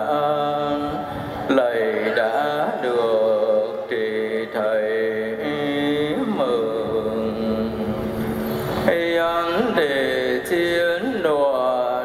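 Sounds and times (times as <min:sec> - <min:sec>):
man chanting: 0:00.0 - 0:08.0, 0:08.8 - 0:12.0.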